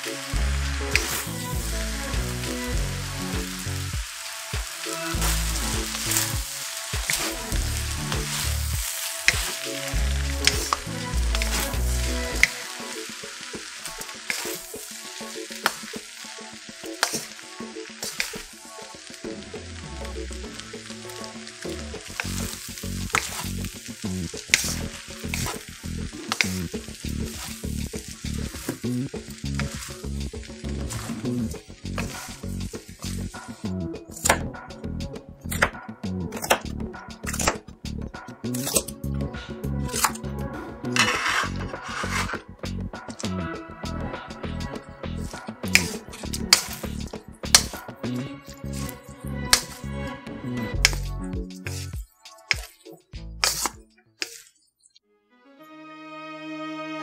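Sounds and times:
noodles sizzling in a wok: 0:00.0 - 0:34.3, 0:41.0 - 0:42.5, 0:45.2 - 0:49.9
wooden spatula scraping wok: 0:00.4 - 0:02.7, 0:04.2 - 0:16.2, 0:17.0 - 0:18.6, 0:20.5 - 0:34.4, 0:40.9 - 0:43.4, 0:45.2 - 0:51.9, 0:53.4 - 0:54.5.

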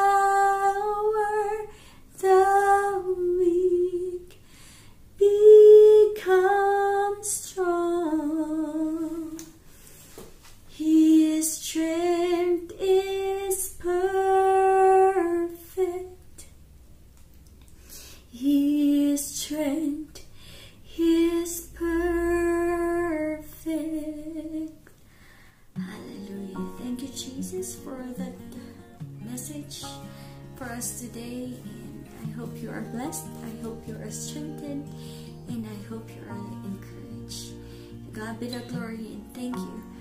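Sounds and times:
woman singing worship song: 0:00.0 - 0:04.5, 0:05.2 - 0:09.6, 0:10.7 - 0:16.5, 0:18.3 - 0:25.0, 0:25.8 - 0:40.0
acoustic guitar: 0:00.0 - 0:16.3, 0:18.0 - 0:24.8, 0:25.4 - 0:40.0
woman singing long notes: 0:20.9 - 0:24.8, 0:25.8 - 0:37.6.

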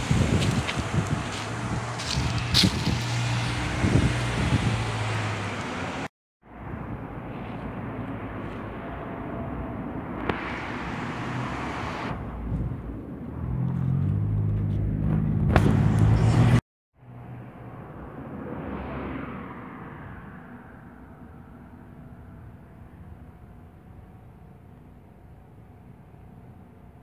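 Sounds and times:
car passing: 0:00.0 - 0:23.3.

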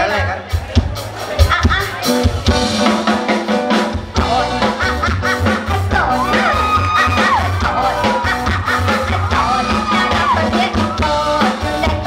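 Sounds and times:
drum kit beat: 0:00.0 - 0:12.0
live band playing: 0:00.0 - 0:12.0.

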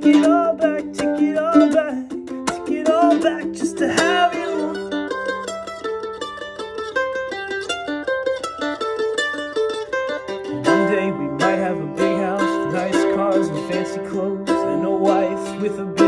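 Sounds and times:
mandolin playing: 0:00.0 - 0:16.0.

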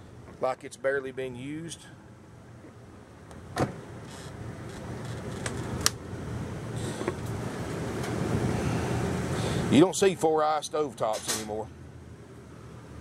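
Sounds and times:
refrigerator door shutting: 0:03.5 - 0:04.3.

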